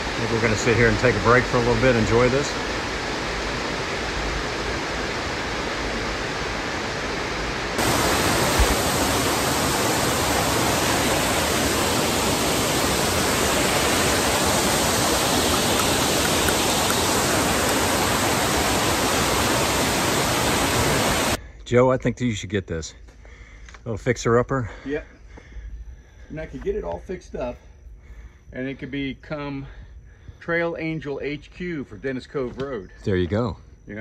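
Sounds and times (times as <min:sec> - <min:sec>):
waterfall rushing: 0:00.0 - 0:21.4.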